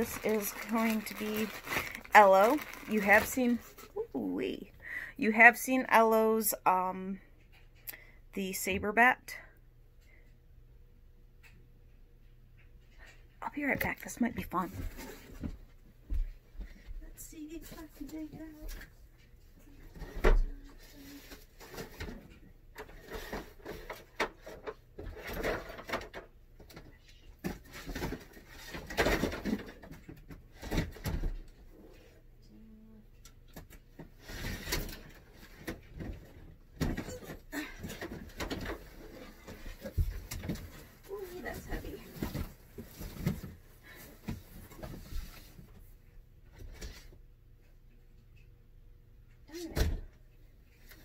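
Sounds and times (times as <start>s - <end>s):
rustling: 0.0s - 4.0s, 34.0s - 47.1s.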